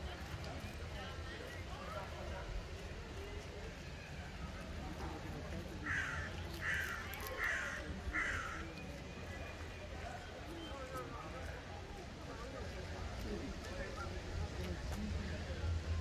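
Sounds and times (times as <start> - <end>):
crow cawing: 5.8 - 8.6.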